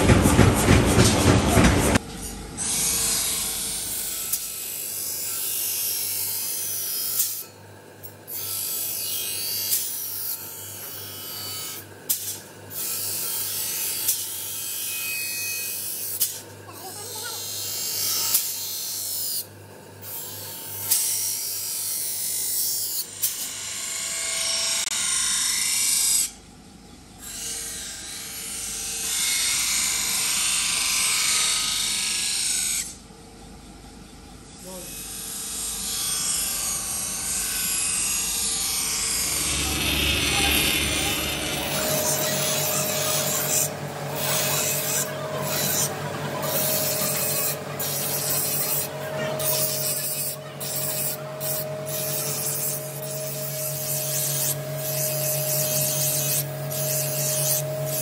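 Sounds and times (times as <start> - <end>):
knife grinding on wheel: 36.3 - 58.0
low motor hum: 36.6 - 58.0.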